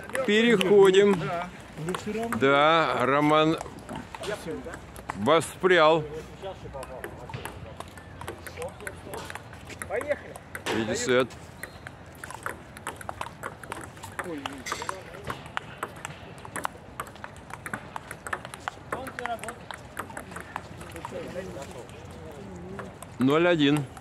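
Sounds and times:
table tennis ball clicks: 0:00.1 - 0:05.3, 0:06.7 - 0:21.2, 0:22.7 - 0:24.0.

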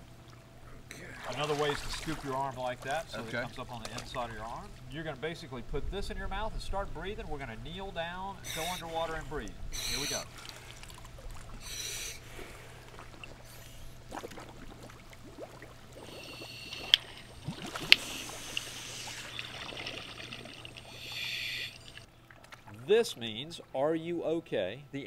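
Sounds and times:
bubbling exhalation: 0:00.7 - 0:03.8, 0:08.4 - 0:22.1
regulator hissing inhalation: 0:08.4 - 0:09.0, 0:09.7 - 0:10.7, 0:11.6 - 0:14.1, 0:16.0 - 0:19.6, 0:20.8 - 0:22.1.

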